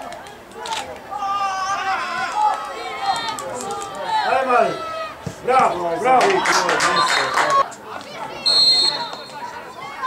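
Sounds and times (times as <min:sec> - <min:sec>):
voices shouting outdoors: 0:00.0 - 0:10.0.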